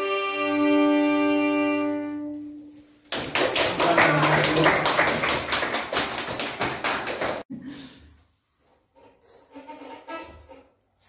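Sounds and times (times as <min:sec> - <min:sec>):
audience clapping: 0:03.1 - 0:07.5.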